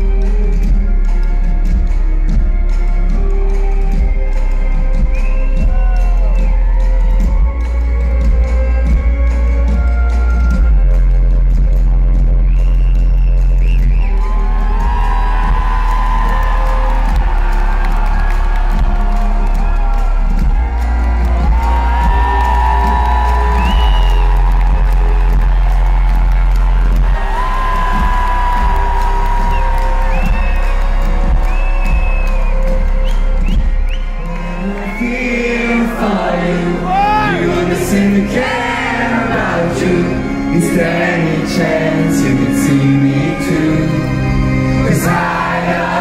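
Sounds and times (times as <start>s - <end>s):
deep bass notes: 0.0s - 46.0s
audience whooping: 13.9s - 37.7s
strings and brass: 14.0s - 46.0s
audience singing along: 34.3s - 46.0s.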